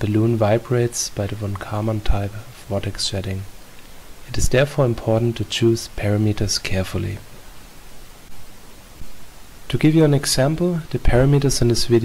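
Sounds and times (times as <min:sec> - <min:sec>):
person speaking: 0:00.0 - 0:07.4, 0:09.6 - 0:12.0
steady background hiss: 0:00.0 - 0:12.0.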